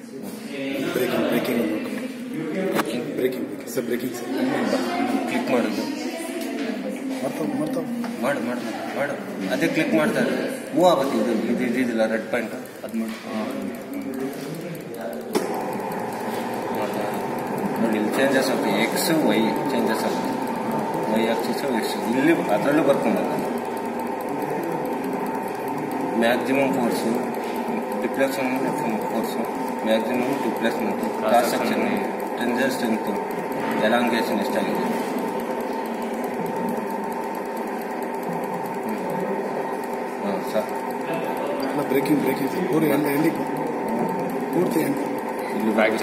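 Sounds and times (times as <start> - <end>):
mechanical hum with held tone: 0.0 - 46.0.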